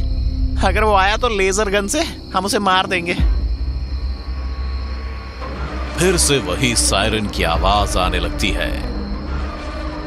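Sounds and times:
deep low rumble: 0.0s - 6.0s
faint high steady tone: 0.0s - 10.0s.

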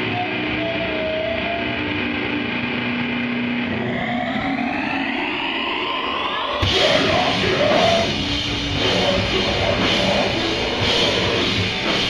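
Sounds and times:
distorted electric guitars droning: 0.0s - 12.0s
rising pitch sweep: 0.0s - 12.0s.

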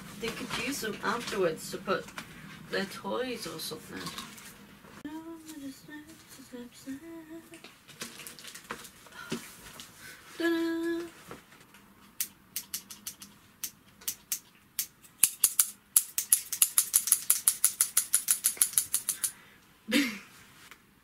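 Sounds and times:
person humming: 10.4s - 11.2s.

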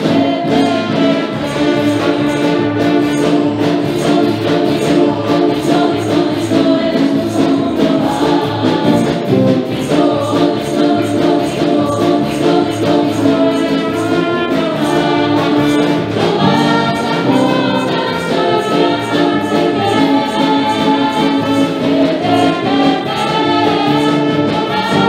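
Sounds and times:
band with steady beat: 0.0s - 25.0s
women singing together: 0.0s - 25.0s.

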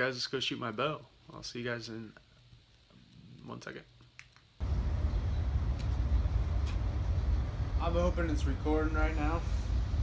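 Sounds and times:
low outdoor rumble: 4.6s - 10.0s.

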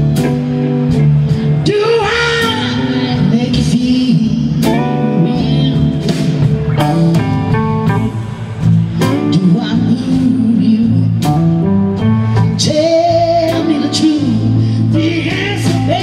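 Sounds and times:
drums: 0.0s - 16.0s
electric bass: 0.0s - 16.0s
electric guitar: 0.0s - 16.0s.

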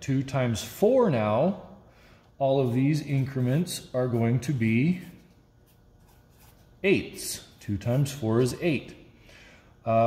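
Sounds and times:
man speaking: 0.0s - 1.8s, 2.4s - 5.2s, 6.8s - 9.0s
marker rubbing on paper: 2.6s - 8.5s.

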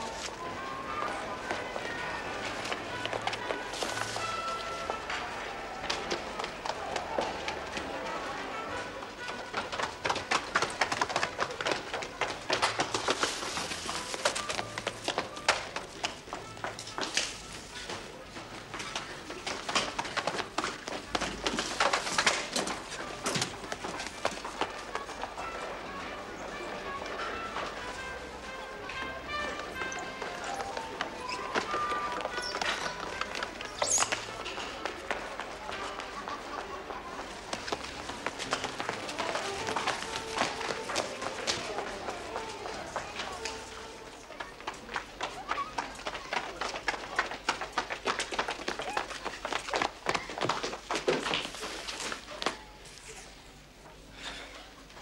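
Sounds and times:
footsteps running on hard floor: 37.5s - 43.6s.

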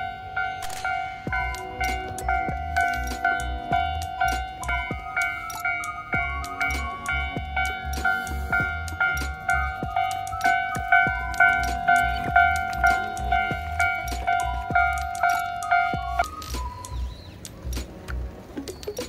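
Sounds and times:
level-crossing alarm bell ringing: 0.0s - 17.3s.

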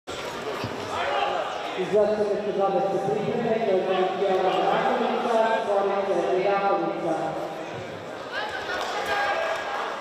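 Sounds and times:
echoing indistinct voices: 0.1s - 10.0s.

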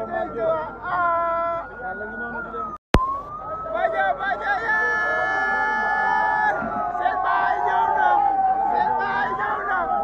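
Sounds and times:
crowd voices: 0.0s - 10.0s
siren wailing: 0.2s - 10.0s.

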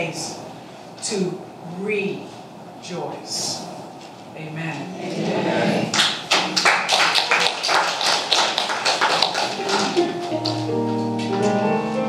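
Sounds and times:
congregation clapping: 5.9s - 11.3s.

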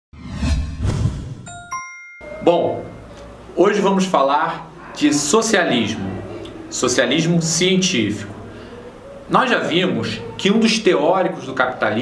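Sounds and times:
loud rushing whoosh: 0.2s - 1.5s
two-note chime: 1.5s - 3.3s.

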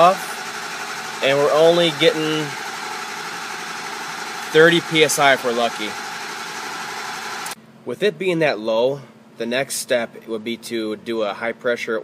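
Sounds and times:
diesel engine cranking on starter: 0.0s - 7.6s.

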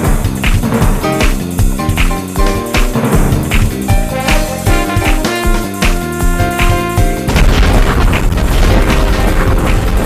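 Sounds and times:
music with clear notes: 0.0s - 10.0s
booming destruction rumble: 6.2s - 10.0s.

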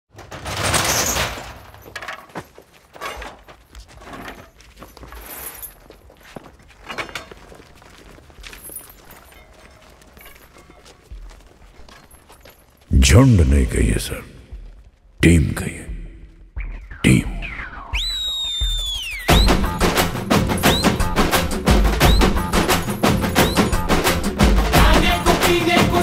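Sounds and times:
low background noise: 6.6s - 17.4s.

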